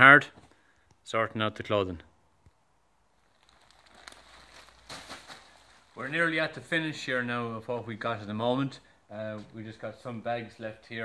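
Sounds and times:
plastic bags and clothing rustling: 0:03.1 - 0:06.8.

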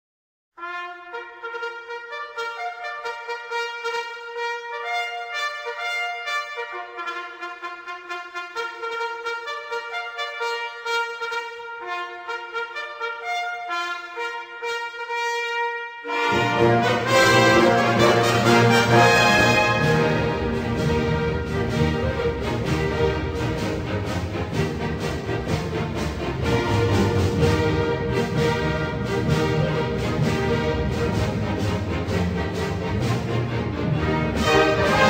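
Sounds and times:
brass instruments playing melody: 0:00.6 - 0:35.0.

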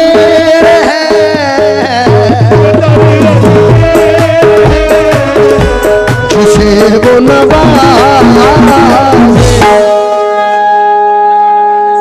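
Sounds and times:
harmonium holding a chord: 0:00.0 - 0:12.0.

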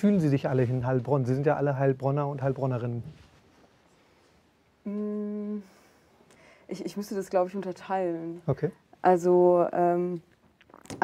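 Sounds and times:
person humming hmm: 0:04.9 - 0:05.8.

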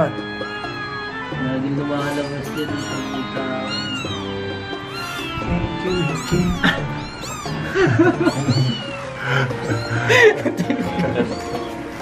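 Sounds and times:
background music: 0:00.0 - 0:12.0
kittens mewing: 0:01.8 - 0:12.0.

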